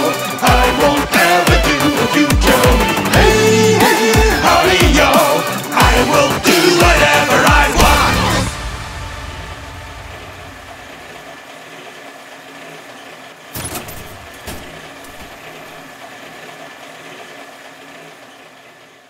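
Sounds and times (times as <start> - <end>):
engine-like hum with high tone: 0.0 - 19.0.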